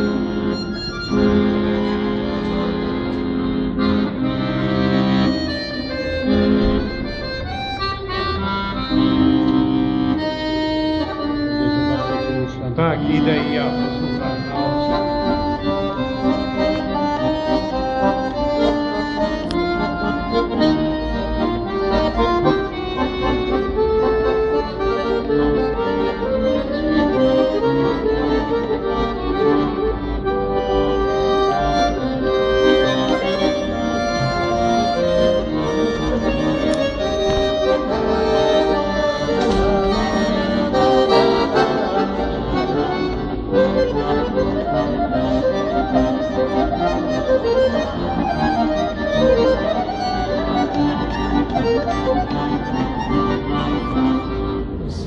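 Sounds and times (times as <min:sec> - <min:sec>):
piano accordion playing a tune: 0:00.0 - 0:55.0.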